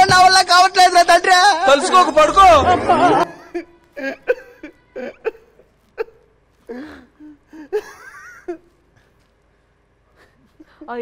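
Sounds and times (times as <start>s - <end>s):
stifled laughter: 2.7s - 8.7s.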